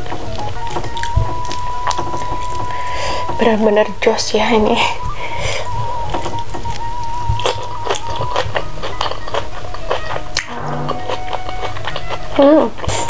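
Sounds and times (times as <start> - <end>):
wet chewing and mouth sounds: 0.0 - 3.8, 4.8 - 13.0
background music: 0.0 - 13.0.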